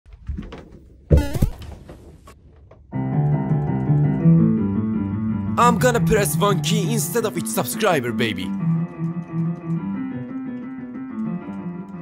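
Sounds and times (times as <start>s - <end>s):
piano playing: 2.9s - 12.0s.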